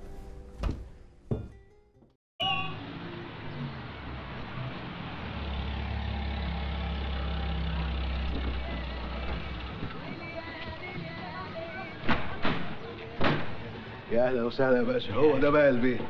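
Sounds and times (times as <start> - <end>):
low vehicle hum: 2.7 - 14.1
crowd murmuring: 7.0 - 14.1.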